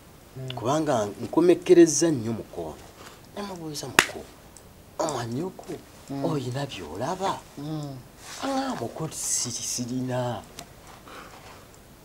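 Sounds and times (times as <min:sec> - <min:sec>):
man speaking: 0:05.0 - 0:10.5.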